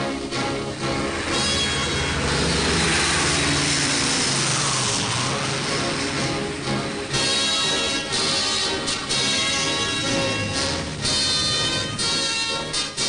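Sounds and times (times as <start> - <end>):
airplane piston engines droning: 0.0 - 13.0.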